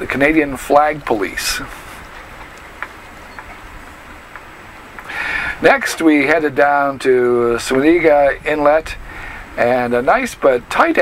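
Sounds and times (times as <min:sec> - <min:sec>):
low cabin background noise: 0:00.0 - 0:08.9
faint ticks: 0:02.0 - 0:05.2.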